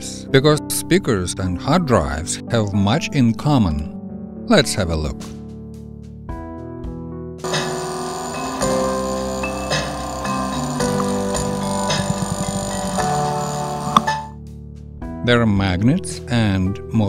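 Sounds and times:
quiet background music: 0.0 - 5.8, 7.4 - 17.0
music with percussion through speaker: 9.8 - 14.3.

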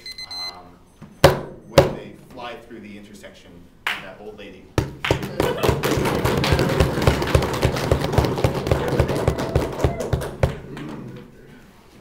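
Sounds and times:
knocking on desks: 4.8 - 10.7.

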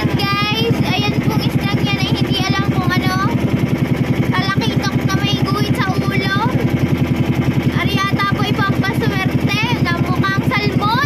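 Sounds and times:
people talking: 0.0 - 3.4, 4.3 - 6.7, 7.7 - 11.0
motor engine running: 0.0 - 11.0.

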